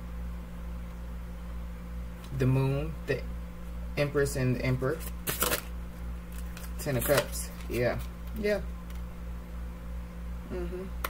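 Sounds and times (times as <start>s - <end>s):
cards being shuffled: 4.9s - 9.1s.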